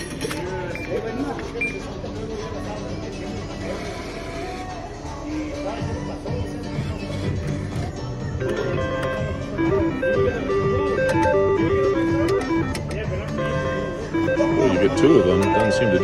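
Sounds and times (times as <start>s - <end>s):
casino background music: 0.0s - 16.0s
people chattering: 0.0s - 16.0s
slot machine beeping tune: 8.4s - 16.0s.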